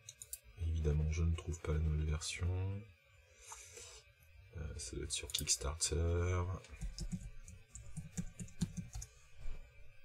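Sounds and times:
computer keyboard typing: 0:06.7 - 0:09.1.

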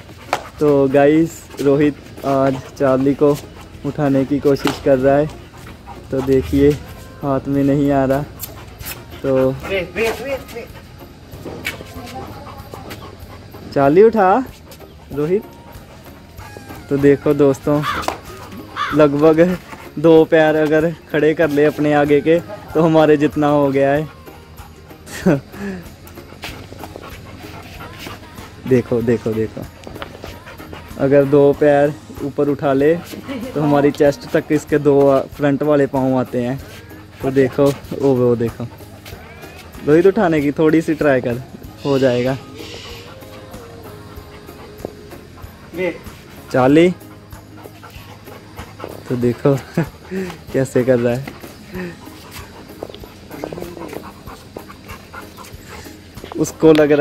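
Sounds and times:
dog panting: 0:00.0 - 0:57.0.

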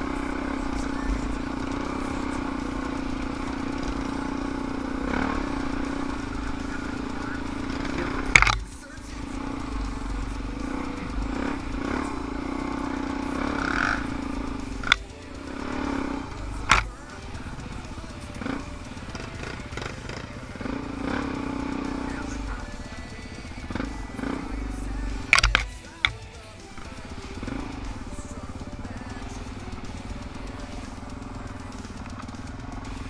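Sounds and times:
background music: 0:00.0 - 0:33.0
dirt bike engine at low revs: 0:00.0 - 0:33.0.

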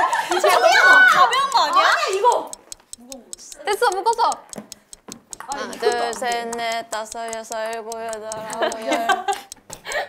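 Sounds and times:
ping-pong ball bouncing on paddle: 0:00.3 - 0:10.0.

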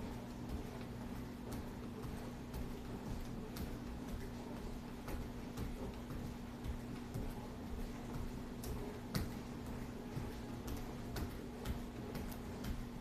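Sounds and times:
hands tapping floor and shoulders: 0:00.0 - 0:13.0
steady low hum: 0:00.0 - 0:13.0.

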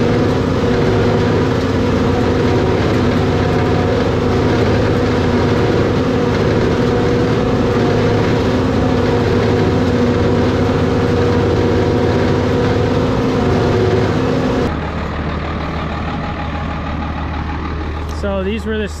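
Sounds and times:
forage harvester drone: 0:00.0 - 0:19.0.

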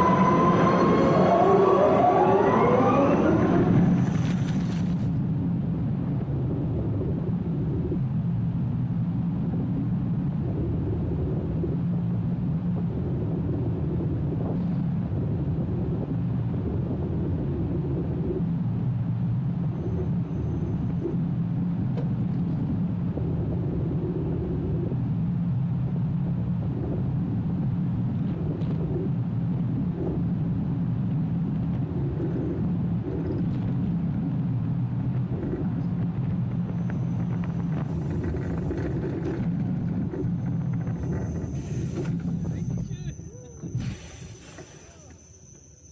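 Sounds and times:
roller coaster wheels rumbling on rails: 0:00.0 - 0:45.9.

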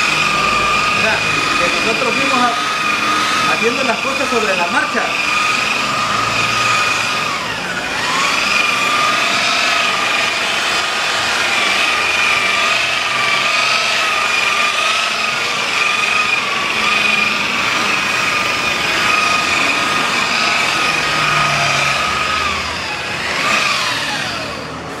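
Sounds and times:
angle grinder high whine: 0:00.0 - 0:25.0.

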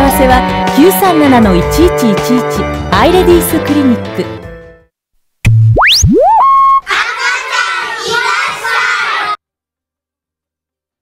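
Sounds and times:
children's voices: 0:06.8 - 0:09.4.

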